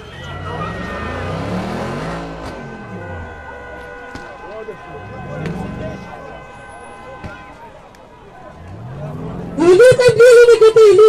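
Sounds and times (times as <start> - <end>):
car driving past: 0.2 - 3.3.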